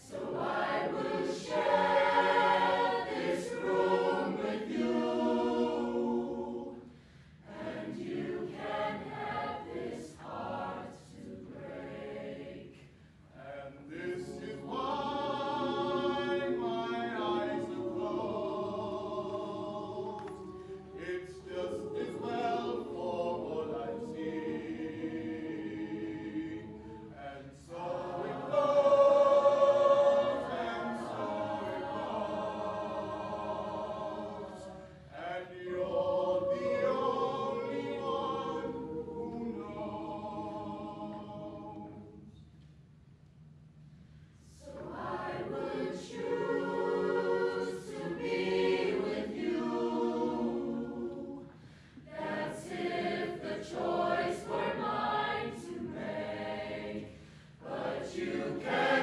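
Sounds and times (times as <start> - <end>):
choir singing sustained chords: 0.0 - 42.4, 44.4 - 59.0.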